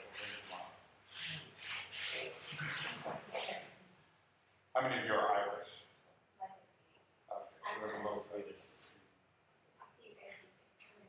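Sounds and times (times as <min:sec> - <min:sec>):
scratchy rubbing strokes: 0:00.0 - 0:03.8.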